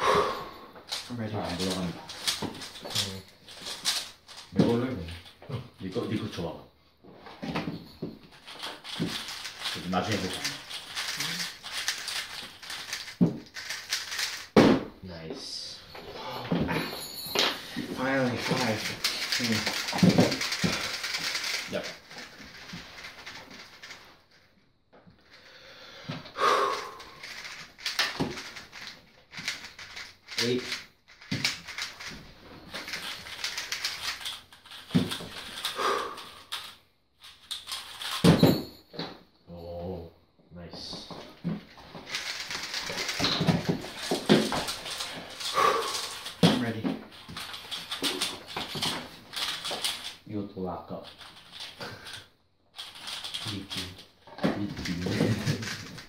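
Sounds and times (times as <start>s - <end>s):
person vocalizing: 0.0s - 0.6s, 16.1s - 16.9s
speed cubes clicking: 8.4s - 14.6s, 18.0s - 24.0s, 26.7s - 32.2s, 32.8s - 38.2s, 42.1s - 46.5s, 47.1s - 50.2s, 52.8s - 56.0s.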